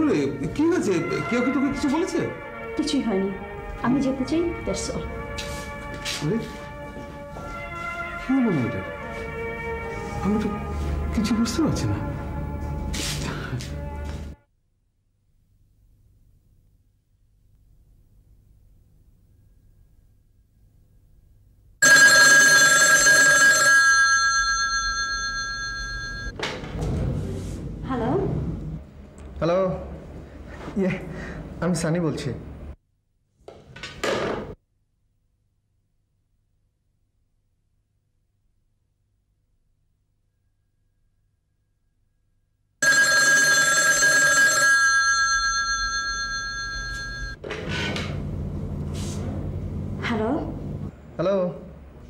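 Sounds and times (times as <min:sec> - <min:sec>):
telephone bell ringing: 0:21.8 - 0:26.3, 0:42.8 - 0:47.4.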